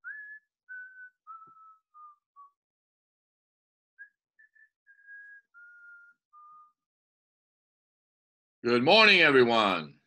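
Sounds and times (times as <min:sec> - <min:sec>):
man whistling a tune: 0:00.0 - 0:02.6, 0:04.0 - 0:06.8.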